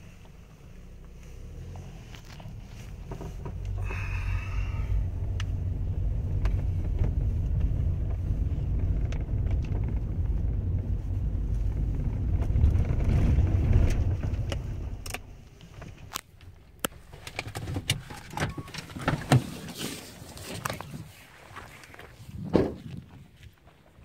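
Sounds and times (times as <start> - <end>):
car road and engine rumble: 0.0 - 24.0.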